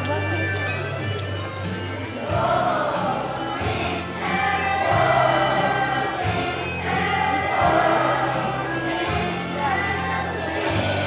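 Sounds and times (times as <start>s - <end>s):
instrumental accompaniment: 0.0s - 11.0s
children's choir singing: 2.1s - 11.0s.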